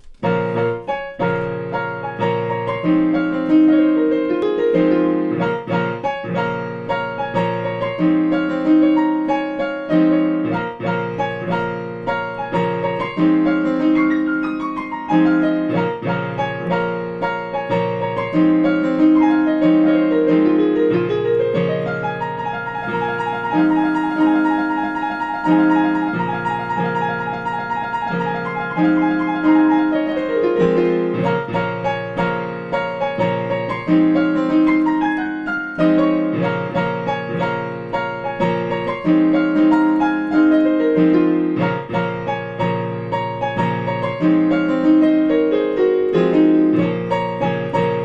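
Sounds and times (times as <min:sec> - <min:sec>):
digital piano playing: 0:00.0 - 0:48.0.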